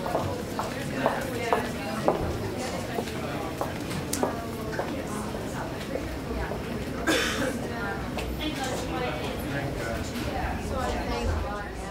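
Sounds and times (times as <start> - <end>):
indistinct background voices: 0.0 - 11.9.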